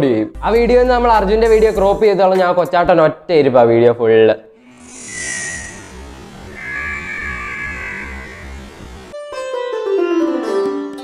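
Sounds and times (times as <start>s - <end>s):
dark ambient music: 4.6s - 9.2s.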